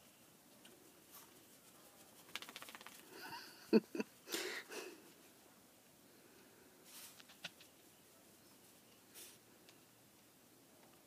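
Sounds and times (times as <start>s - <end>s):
person laughing: 3.1s - 5.0s.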